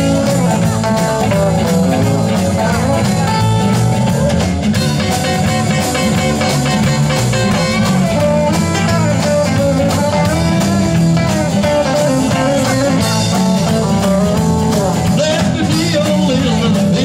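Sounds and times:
rock and roll band playing: 0.0s - 17.0s.

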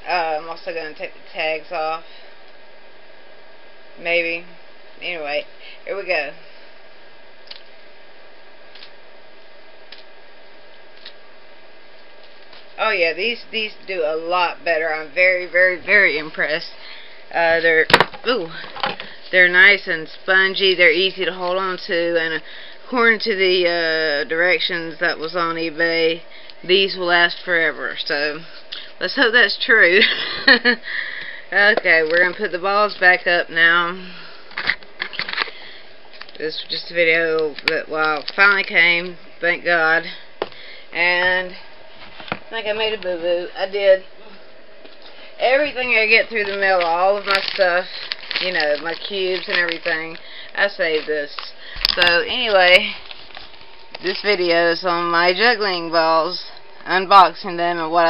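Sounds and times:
background hiss: 0.0s - 58.0s
plastic packaging rustling: 34.5s - 39.2s, 45.0s - 55.4s.

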